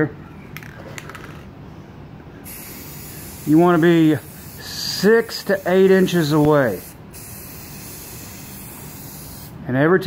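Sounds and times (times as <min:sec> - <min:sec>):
low shop background: 0:00.0 - 0:10.0
metallic clicks of spray can: 0:06.2 - 0:08.6.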